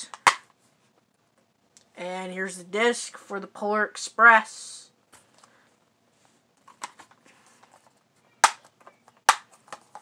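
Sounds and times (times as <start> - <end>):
plastic case clicks: 8.4 - 10.0.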